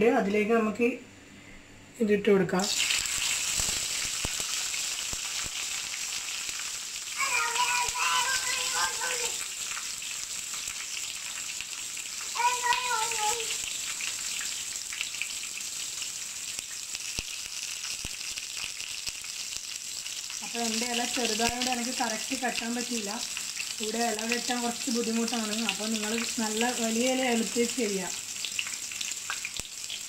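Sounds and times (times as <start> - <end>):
fish sizzling in hot oil: 2.6 - 30.0.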